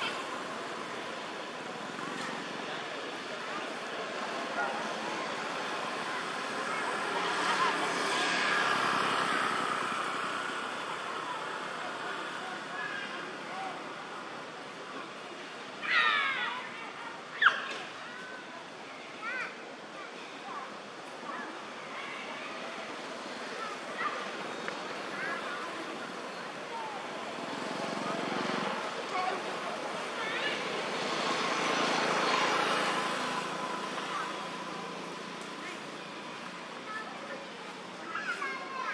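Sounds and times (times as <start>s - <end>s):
outdoor background noise: 0.0s - 38.9s
passing engine: 22.5s - 36.9s.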